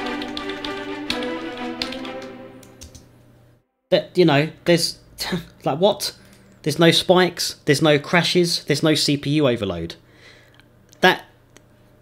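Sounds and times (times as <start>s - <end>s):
sustained string chords: 0.0s - 2.8s.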